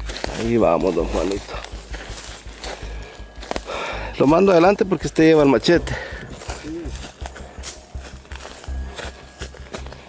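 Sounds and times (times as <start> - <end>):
footsteps crunching dry grass: 0.0 - 10.0.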